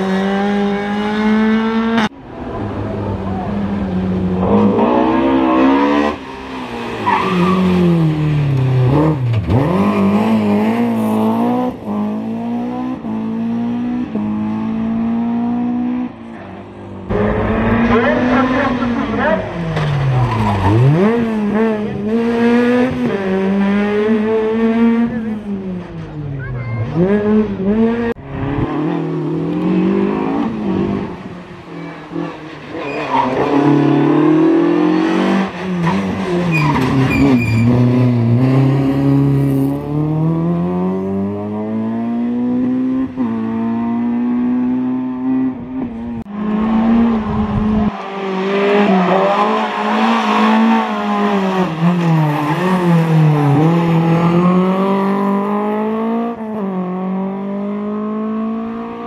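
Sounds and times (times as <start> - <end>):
rally car engine revving: 0.0 - 59.0
tyre squeal: 32.7 - 33.7, 35.8 - 38.0.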